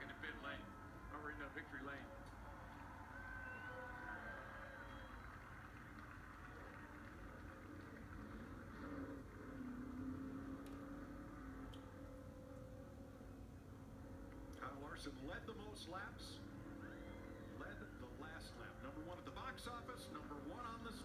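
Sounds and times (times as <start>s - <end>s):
race car engine through tv speaker: 6.5s - 12.0s.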